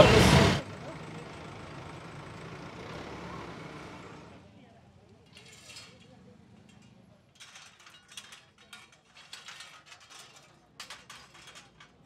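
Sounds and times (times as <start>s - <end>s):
metal bars clinking and scraping: 5.3s - 12.0s.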